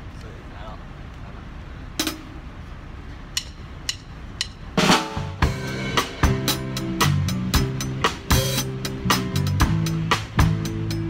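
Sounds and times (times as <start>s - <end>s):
cymbal crash and drums: 2.0s - 2.4s, 3.4s - 11.0s
drumstick hit: 2.0s - 2.4s, 3.4s - 7.2s
music track: 3.4s - 11.0s.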